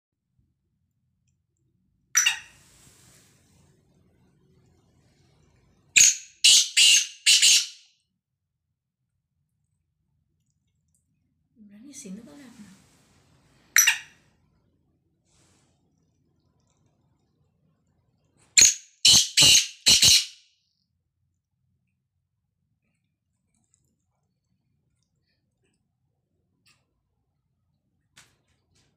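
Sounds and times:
bird calling harsh notes: 6.0s - 7.8s, 18.6s - 20.4s.

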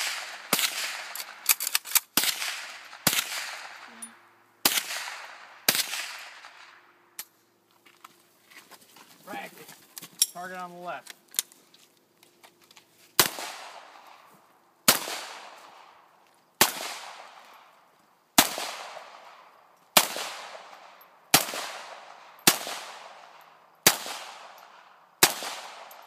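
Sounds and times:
pistol shots with echo: 0.0s - 1.4s, 2.2s - 3.9s, 4.6s - 6.8s, 13.2s - 14.2s, 14.9s - 16.0s, 16.6s - 17.6s, 18.4s - 26.0s.

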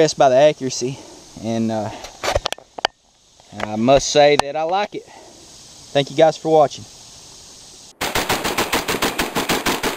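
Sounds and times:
faint steady background: 0.0s - 9.9s
rapid automatic gunfire: 8.0s - 9.9s.

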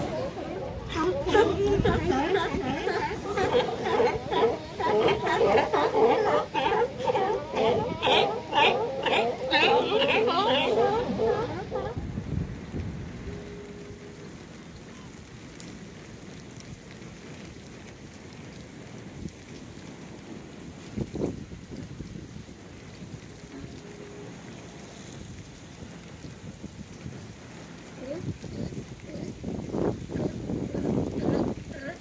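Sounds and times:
rain falling on wet ground: 0.0s - 32.0s.

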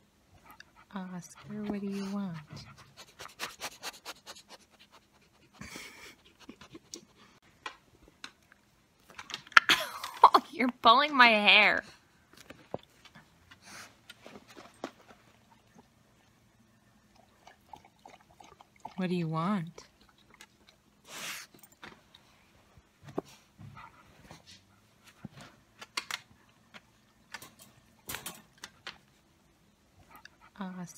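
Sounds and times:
dog panting: 0.4s - 7.4s, 23.2s - 25.6s.

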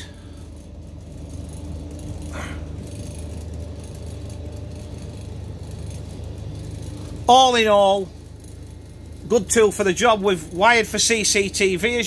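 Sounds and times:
coach engine idling: 0.0s - 12.0s.

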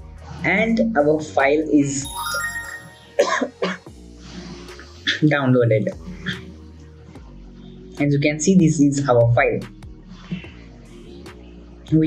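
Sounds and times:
soft background music: 0.0s - 12.0s
person coughing: 3.2s - 3.8s.

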